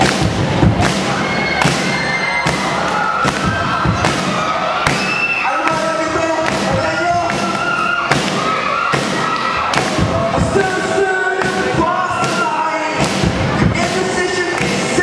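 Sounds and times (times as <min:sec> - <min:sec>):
drum kit hits: 0:00.0 - 0:15.0.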